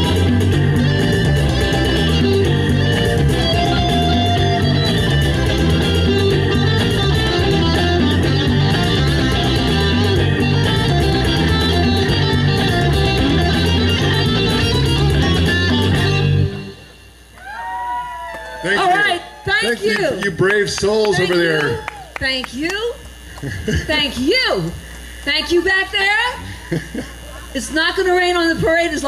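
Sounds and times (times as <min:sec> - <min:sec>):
repeating bass line: 0:00.0 - 0:17.2
organ keyboard: 0:00.0 - 0:17.3
electric guitars: 0:00.0 - 0:29.0.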